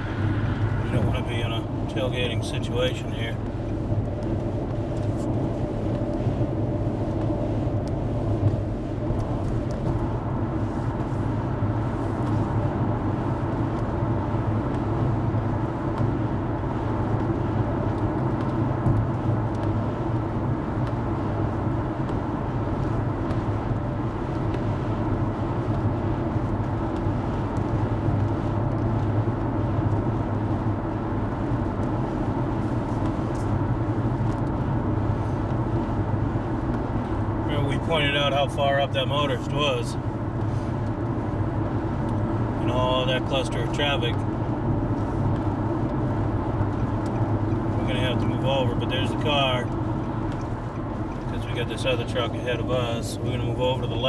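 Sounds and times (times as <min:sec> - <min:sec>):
vehicle engine drone: 0:00.0 - 0:54.0.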